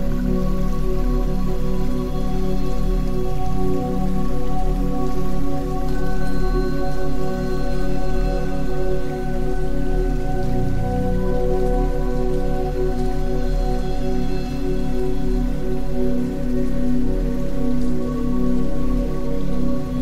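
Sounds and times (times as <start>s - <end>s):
ambient drone music: 0.0s - 20.0s
steady rain: 0.0s - 20.0s.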